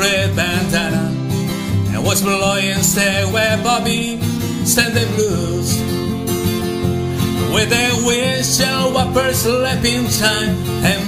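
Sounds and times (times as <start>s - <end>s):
acoustic guitar strumming: 0.0s - 11.0s
man singing country song: 0.0s - 11.0s.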